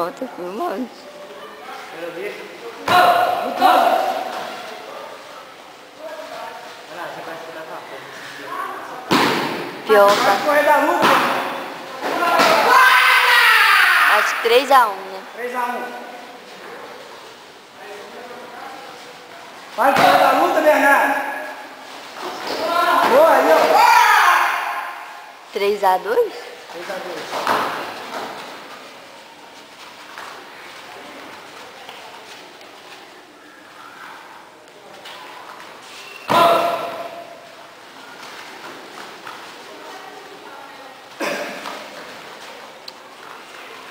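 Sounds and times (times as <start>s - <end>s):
room noise in a hall: 0.0s - 43.9s
sharp thud: 9.1s - 10.4s
young person shouting: 12.5s - 14.4s.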